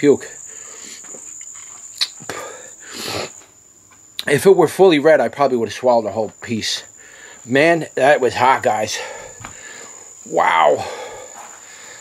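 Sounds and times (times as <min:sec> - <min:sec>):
man breathing hard: 0:00.4 - 0:01.1, 0:02.3 - 0:03.4, 0:06.9 - 0:07.5, 0:08.9 - 0:10.2, 0:10.8 - 0:12.0.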